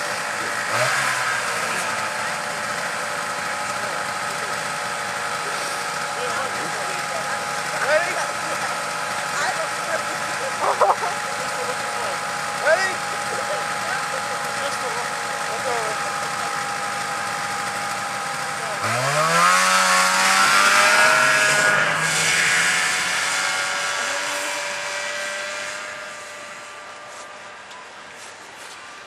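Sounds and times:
snowmobile engine revving: 0:00.0 - 0:29.0.

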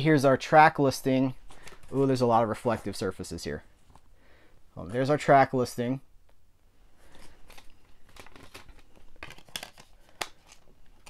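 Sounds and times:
paper inserts rustling: 0:01.3 - 0:04.1, 0:07.0 - 0:11.0
plastic disc case clicks: 0:07.5 - 0:10.6.

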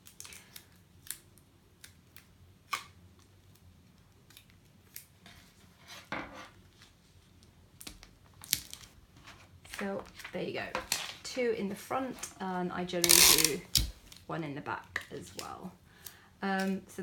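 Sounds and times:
hands rustling tape: 0:00.0 - 0:16.9.

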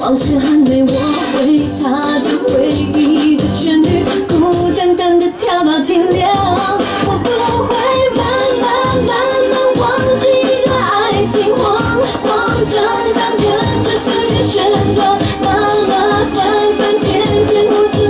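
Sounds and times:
dance beat: 0:00.0 - 0:18.0
woman singing: 0:00.0 - 0:18.0.

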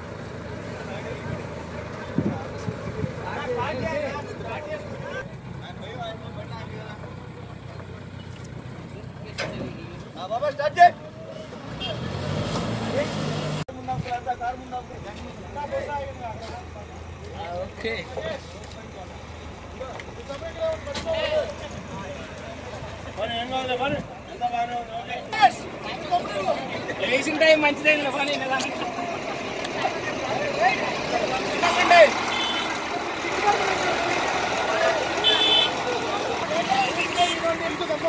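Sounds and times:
diesel engine humming: 0:00.0 - 0:38.0
faint voices: 0:13.7 - 0:38.0.

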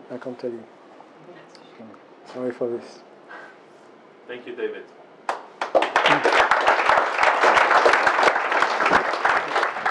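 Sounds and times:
audience applauding: 0:05.3 - 0:09.9.

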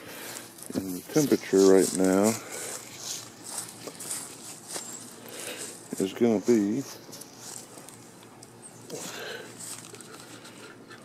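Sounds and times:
footsteps crunching on dry leaves: 0:00.0 - 0:08.3, 0:09.0 - 0:10.5.

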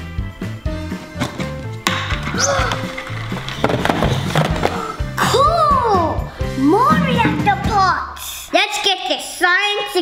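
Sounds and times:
background music: 0:00.0 - 0:08.6
cardboard boxes tumbling onto table: 0:01.2 - 0:04.9.

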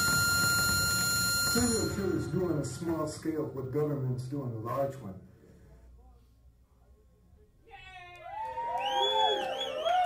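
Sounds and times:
high wavering whistle: 0:00.0 - 0:02.7
audience whooping and cheering: 0:07.8 - 0:10.0.

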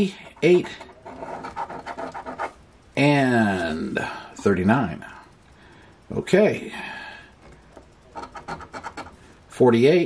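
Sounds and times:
coin scraping ticket: 0:00.4 - 0:02.6.

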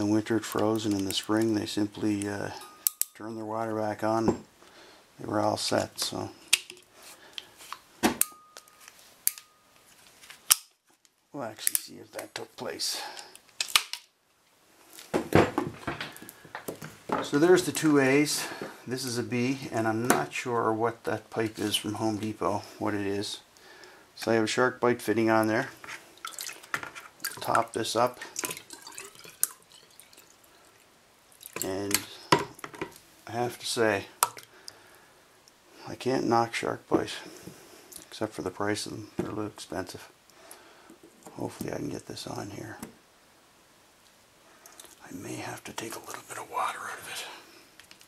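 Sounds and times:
sharp metallic tool clicks: 0:02.8 - 0:03.2
water dripping and trickling: 0:26.0 - 0:31.8.

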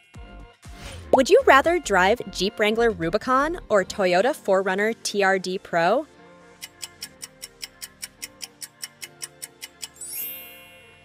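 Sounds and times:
quiet background music: 0:00.0 - 0:11.0
timer ticking: 0:06.6 - 0:10.1.

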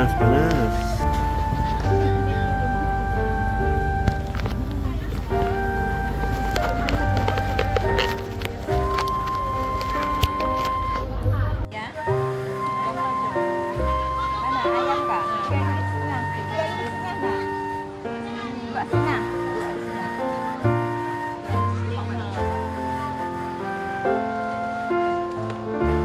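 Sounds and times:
melody of held notes: 0:00.0 - 0:26.0.

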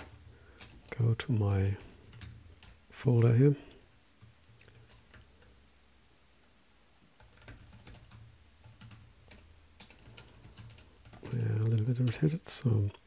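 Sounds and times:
computer keyboard typing: 0:00.0 - 0:03.4, 0:04.2 - 0:05.6, 0:07.2 - 0:12.3.

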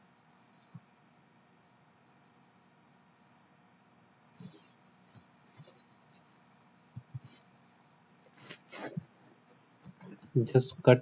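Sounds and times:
computer mouse scratching and clicking: 0:04.3 - 0:06.4, 0:07.0 - 0:07.5.

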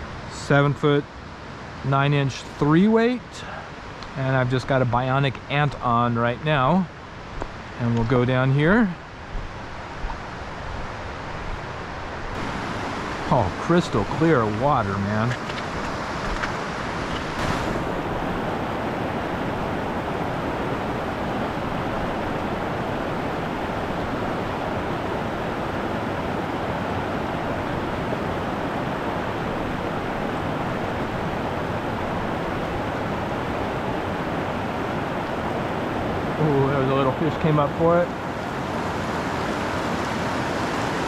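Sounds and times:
stream rushing over boulders: 0:00.0 - 0:41.0.

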